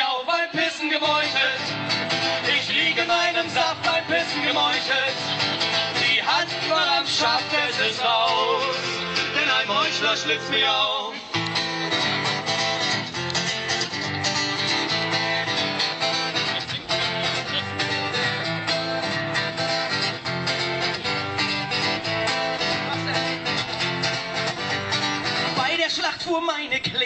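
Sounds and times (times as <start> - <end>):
live band instrumental guitar: 1.0 - 10.6, 11.2 - 27.0.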